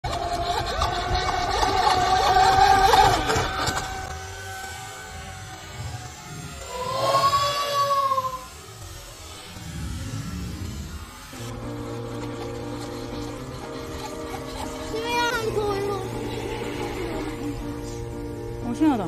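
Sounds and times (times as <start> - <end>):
model boat motors whining: 0.0 - 19.0.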